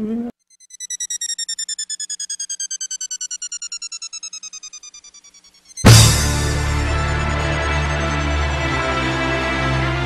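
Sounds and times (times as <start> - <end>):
stuttering synth tone gliding down: 0.4 - 6.0.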